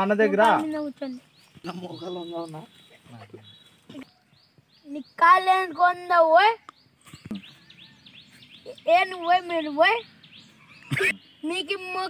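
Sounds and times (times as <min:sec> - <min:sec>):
man speaking: 0:00.0 - 0:00.7, 0:01.6 - 0:03.4.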